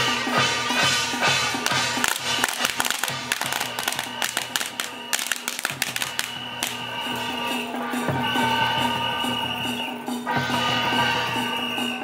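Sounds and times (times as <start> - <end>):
drum beating: 0.0 - 7.2
hand cymbals clashing: 0.0 - 9.0.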